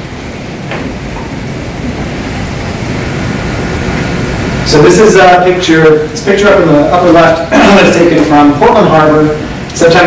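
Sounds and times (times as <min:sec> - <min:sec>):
ventilation rumbling: 0:00.0 - 0:10.0.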